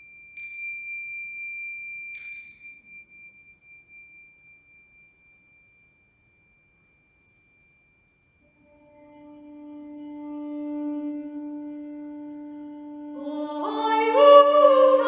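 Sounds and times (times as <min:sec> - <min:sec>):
bell ringing: 0:00.0 - 0:08.5.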